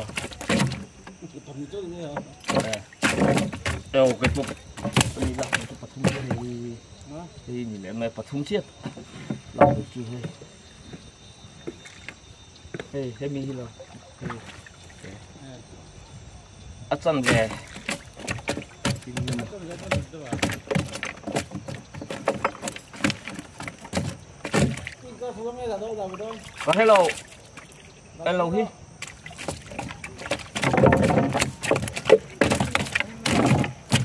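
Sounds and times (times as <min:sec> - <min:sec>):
fish flapping on wooden floor: 0:00.0 - 0:01.2, 0:02.4 - 0:06.5, 0:17.2 - 0:25.0, 0:29.0 - 0:34.0.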